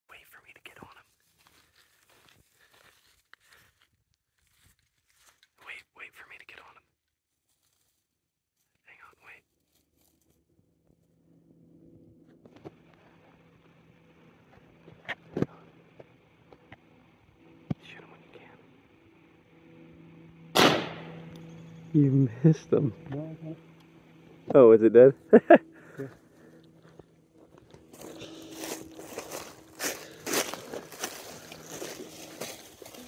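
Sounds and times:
person whispering: 0:00.1 - 0:01.2, 0:05.6 - 0:06.9, 0:08.8 - 0:09.5, 0:17.7 - 0:18.7
faint low hum: 0:08.8 - 0:33.0.

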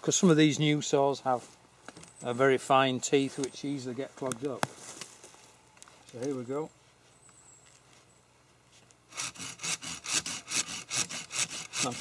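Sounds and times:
saw rasping through wood: 0:09.1 - 0:12.0.

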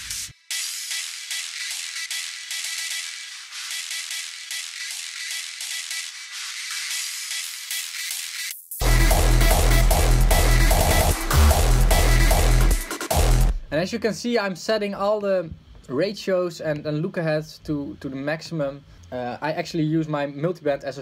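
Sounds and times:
hardstyle music: 0:00.0 - 0:13.7
heavy kick and sub bass: 0:08.8 - 0:13.7.

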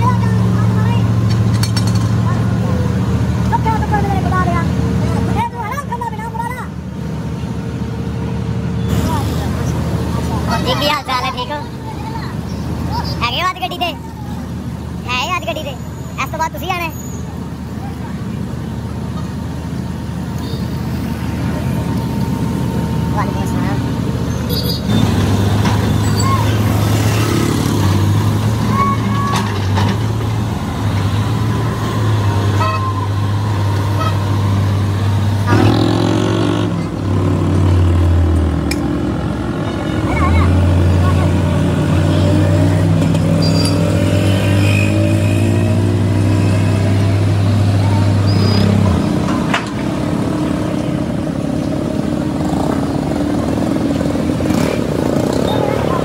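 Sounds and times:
diesel engine droning: 0:00.0 - 0:56.0
street traffic: 0:00.0 - 0:56.0
voices: 0:00.0 - 0:56.0.

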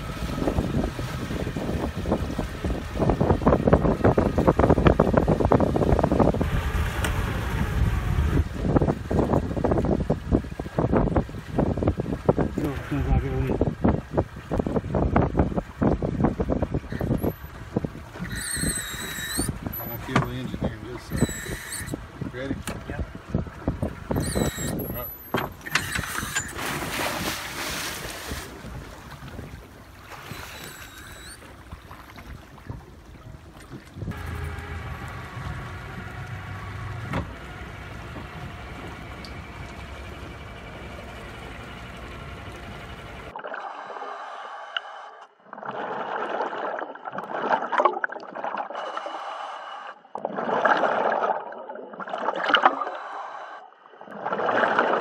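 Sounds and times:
boat motor idling: 0:00.0 - 0:26.9, 0:32.8 - 0:43.4
diver breathing through regulator: 0:43.8 - 0:45.2, 0:48.7 - 0:50.1, 0:52.8 - 0:53.7
bubbles gurgling underwater: 0:45.4 - 0:48.8, 0:50.1 - 0:52.9, 0:54.0 - 0:55.0.

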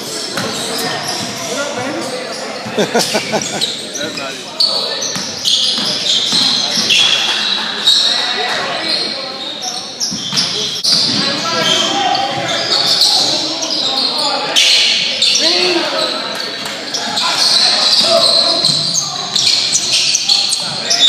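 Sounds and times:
sneakers squeaking on wooden floor: 0:00.0 - 0:21.0
players calling out: 0:00.4 - 0:19.9.

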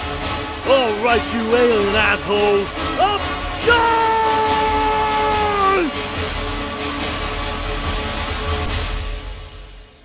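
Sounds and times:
film score music: 0:00.0 - 0:10.0
man yelling: 0:00.7 - 0:06.0.

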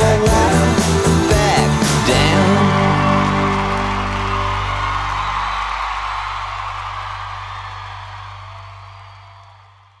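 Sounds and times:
crowd noise: 0:00.8 - 0:10.0.

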